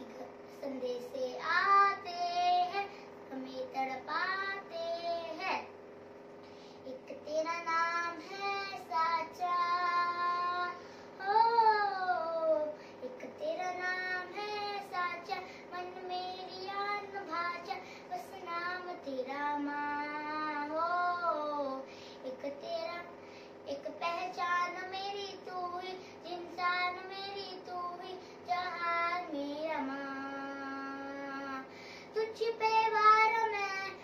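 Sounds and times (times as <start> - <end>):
girl singing: 0.0 - 5.7, 6.8 - 34.0
breaths: 6.4 - 6.9, 10.8 - 11.2, 12.7 - 13.0, 15.4 - 15.7, 17.8 - 18.1, 21.8 - 22.2, 23.2 - 23.6, 31.7 - 32.2.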